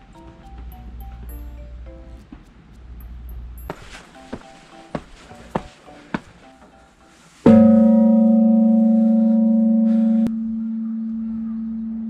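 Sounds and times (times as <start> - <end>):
temple bell ringing: 7.5 - 12.0.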